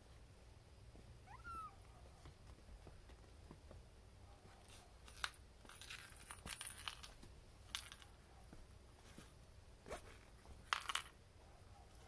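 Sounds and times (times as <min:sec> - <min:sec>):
kitten mewing: 0:01.2 - 0:01.9.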